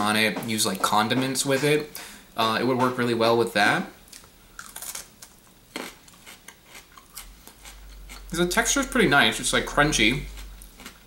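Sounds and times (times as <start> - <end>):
crunching and chewing fruit: 4.1 - 9.1, 9.9 - 11.0.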